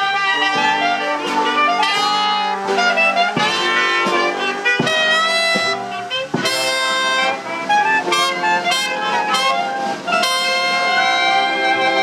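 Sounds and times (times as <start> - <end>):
jazz band punched chords: 0.0 - 12.0.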